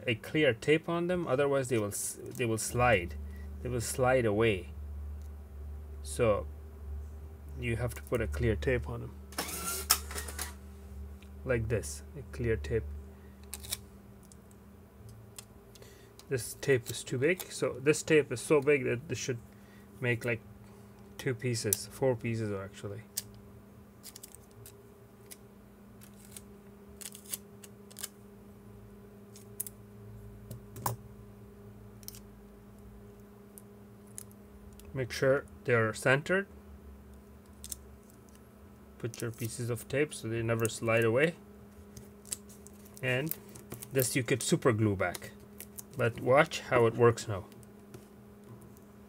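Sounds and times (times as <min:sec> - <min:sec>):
steady low hum: 0:00.0 - 0:49.0
tape crackling: 0:13.4 - 0:18.8, 0:24.0 - 0:28.2, 0:29.3 - 0:29.8, 0:32.0 - 0:35.6, 0:37.1 - 0:39.8, 0:40.4 - 0:49.0.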